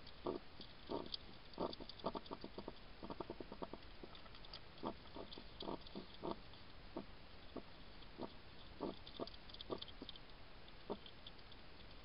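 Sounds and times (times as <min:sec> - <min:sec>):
hedgehog chewing dry food: 0:00.0 - 0:12.0.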